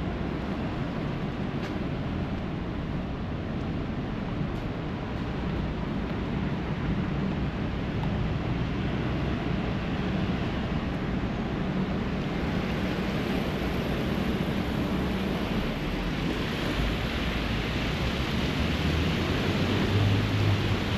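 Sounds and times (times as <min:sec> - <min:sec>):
city traffic noise: 0:00.0 - 0:20.9
low engine hum: 0:00.0 - 0:20.9.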